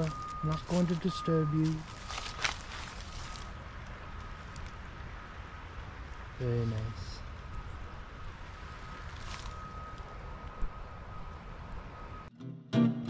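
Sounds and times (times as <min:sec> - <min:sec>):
faint high whine: 0:00.0 - 0:04.6, 0:06.4 - 0:12.3
strummed acoustic guitar music: 0:12.3 - 0:13.0.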